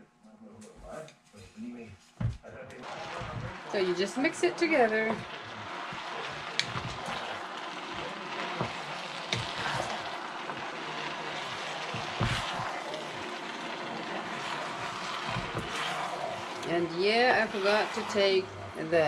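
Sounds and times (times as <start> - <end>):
steady hiss: 0.7 - 19.0
wooden spatulas stirring sticky rice: 2.8 - 18.8
wood knocking on pan: 5.1 - 7.5, 8.5 - 10.7, 11.4 - 13.7, 14.3 - 16.6.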